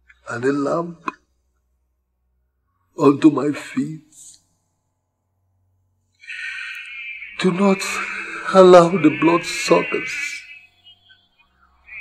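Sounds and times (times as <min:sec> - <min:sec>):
steady high background tone: 0:00.0 - 0:12.0
man praying: 0:03.0 - 0:04.4, 0:06.3 - 0:11.1.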